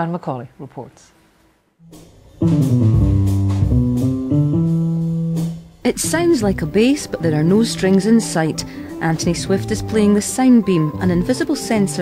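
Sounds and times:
bass-like electronic notes: 0:01.8 - 0:07.4.

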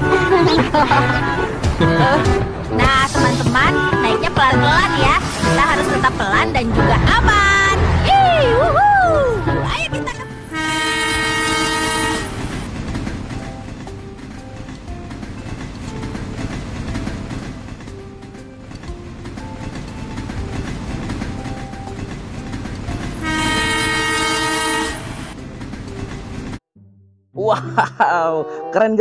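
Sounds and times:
train horn blasts: 0:10.4 - 0:12.7, 0:23.1 - 0:25.4.

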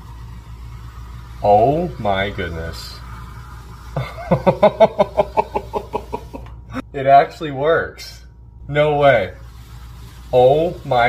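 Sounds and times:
man laughing: 0:04.0 - 0:06.8.

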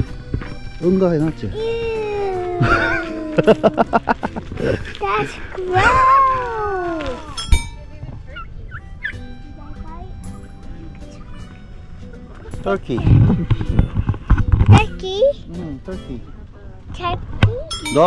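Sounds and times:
turkey gobbling: 0:08.3 - 0:09.3.

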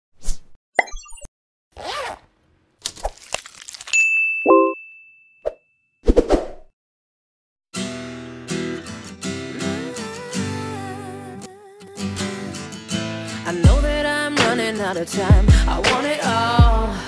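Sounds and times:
high ringing ding: 0:04.0 - 0:05.9
strummed acoustic guitar: 0:07.8 - 0:17.0.

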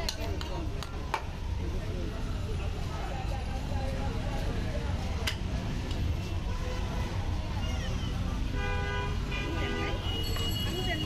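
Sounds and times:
street traffic rumble: 0:00.0 - 0:11.0
vehicle horn: 0:08.6 - 0:11.0.

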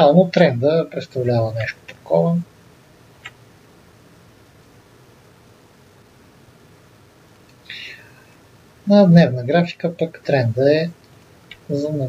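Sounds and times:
man speaking: 0:00.0 - 0:02.5, 0:07.7 - 0:08.2, 0:08.9 - 0:12.0
faint room hiss: 0:00.0 - 0:12.0
breathy intake of air: 0:07.6 - 0:08.4.

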